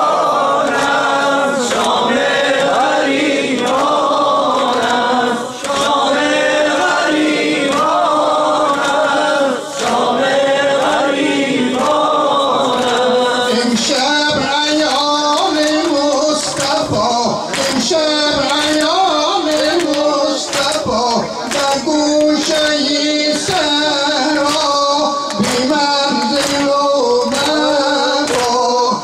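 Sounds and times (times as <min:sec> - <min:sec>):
men chanting a lament: 0:00.0 - 0:29.0.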